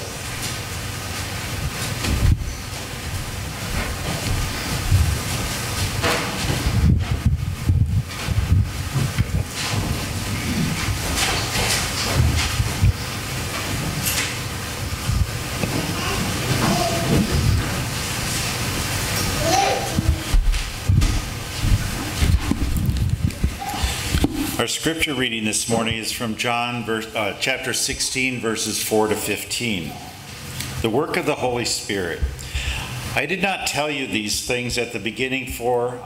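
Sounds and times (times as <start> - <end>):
hissing room noise: 0.0 - 36.0
low rumble: 6.5 - 11.1.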